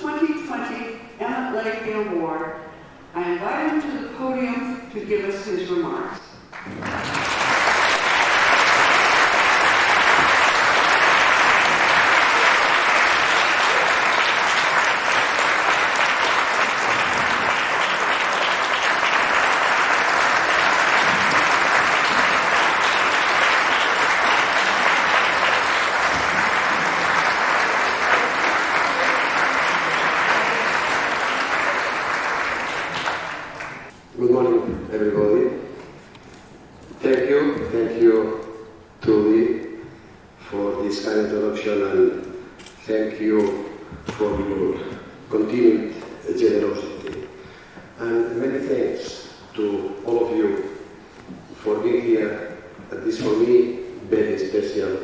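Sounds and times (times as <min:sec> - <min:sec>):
large audience clapping: 0:06.5 - 0:33.9.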